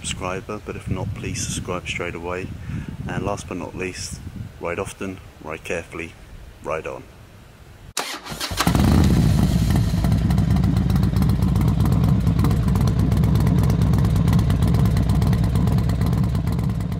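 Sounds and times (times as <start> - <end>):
motorcycle engine starting: 8.0 - 16.9
motorcycle engine idling: 8.5 - 16.9.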